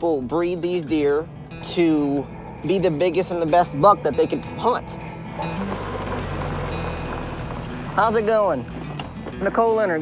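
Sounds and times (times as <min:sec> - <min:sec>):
background music: 0:00.0 - 0:10.0
pickup truck engine and tyre rumble: 0:04.4 - 0:09.2.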